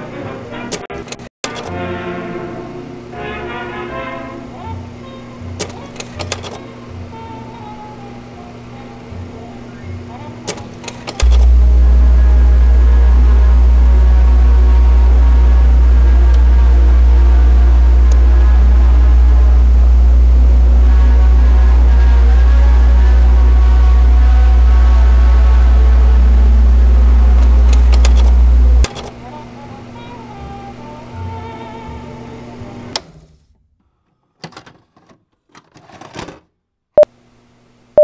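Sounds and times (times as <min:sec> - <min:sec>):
deep electronic drone: 0:11.2 - 0:28.9
wavering electronic tones: 0:11.2 - 0:28.9
sharp clicks: 0:27.4 - 0:29.1.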